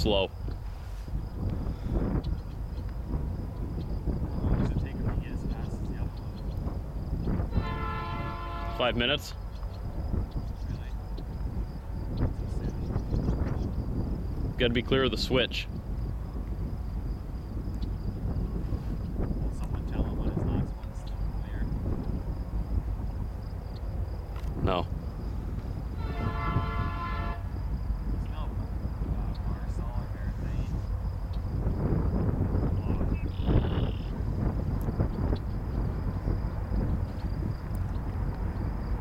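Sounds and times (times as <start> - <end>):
diesel locomotives rumbling: 0.0 - 39.0
wind on microphone: 0.0 - 39.0.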